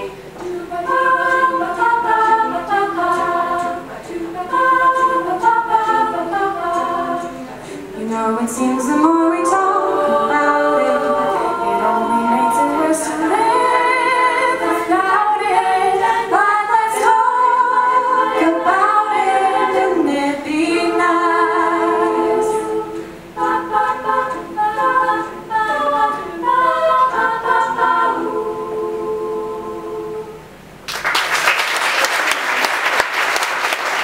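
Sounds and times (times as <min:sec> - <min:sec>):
women's a cappella choir singing: 0:00.0 - 0:30.5.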